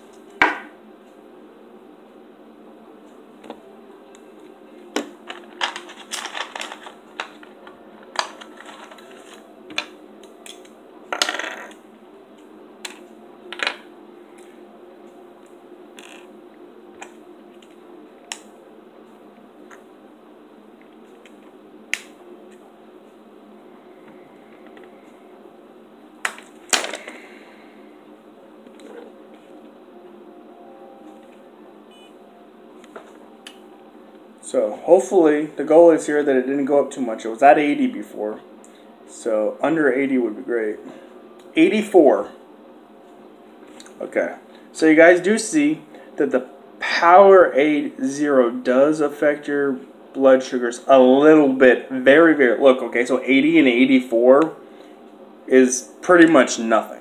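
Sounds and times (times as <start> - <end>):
room tone hum: 0.0 - 57.0.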